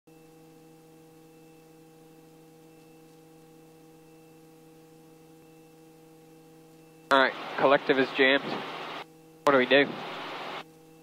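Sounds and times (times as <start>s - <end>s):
steady hum of held tones: 0.1s - 11.0s.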